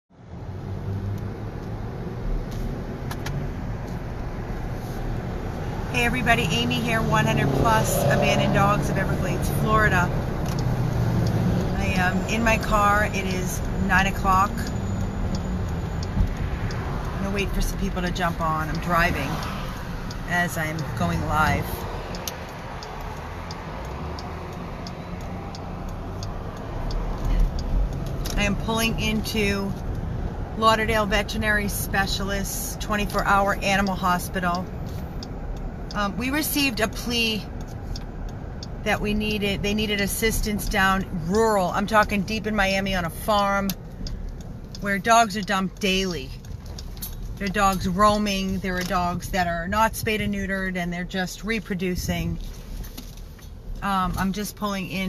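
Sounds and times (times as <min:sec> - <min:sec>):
car cabin road rumble: 0:00.2 - 0:55.0
turn signal clicking: 0:00.9 - 0:55.0.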